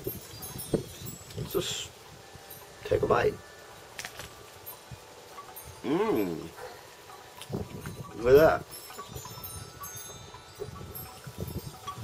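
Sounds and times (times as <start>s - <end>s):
man humming: 5.8s - 6.7s.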